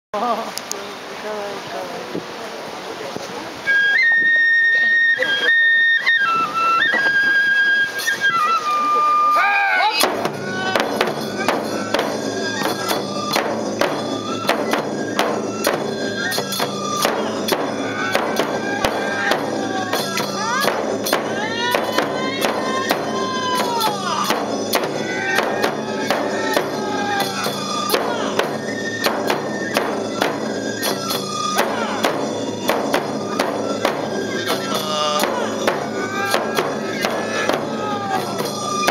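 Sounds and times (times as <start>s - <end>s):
bamboo flute melody: 3.5s - 38.9s
barrel drums beating: 10.0s - 38.9s
hand cymbals: 10.0s - 38.9s.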